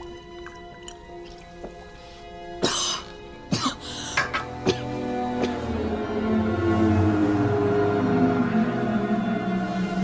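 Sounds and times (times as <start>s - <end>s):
soft sustained music: 0.0s - 10.0s
person coughing: 2.6s - 5.6s.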